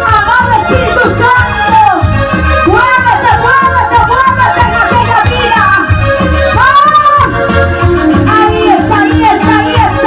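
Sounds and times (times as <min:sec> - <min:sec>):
keyboard playing latin instrumental: 0:00.0 - 0:10.0.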